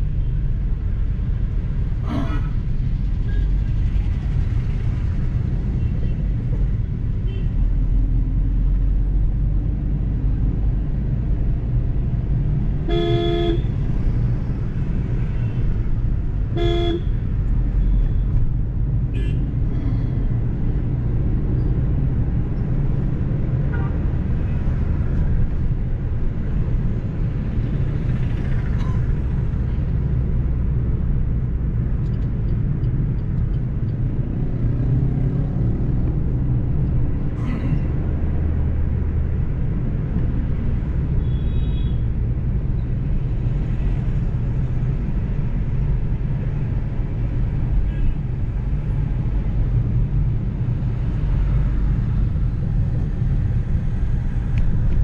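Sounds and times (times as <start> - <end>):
car engine and road rumble: 0.0 - 55.0
vehicle horn tooting: 12.9 - 13.7, 16.6 - 17.1.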